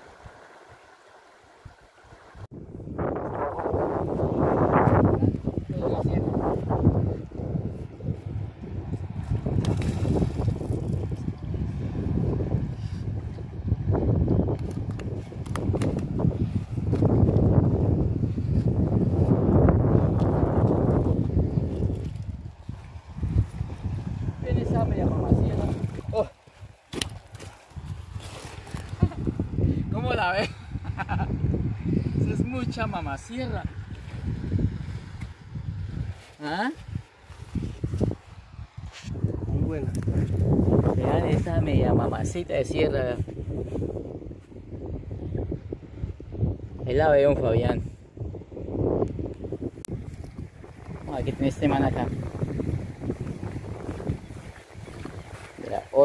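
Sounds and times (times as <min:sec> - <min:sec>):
wind buffeting microphone: 0:01.6 - 0:56.0.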